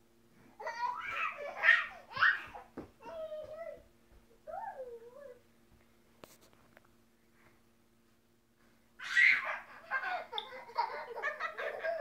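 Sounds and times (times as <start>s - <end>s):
baby squealing and laughing: 0.6s - 2.6s, 9.0s - 12.0s.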